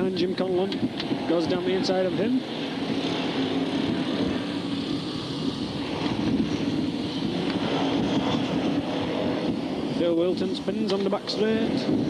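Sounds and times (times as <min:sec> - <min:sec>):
race car engines roaring: 0:00.0 - 0:12.0.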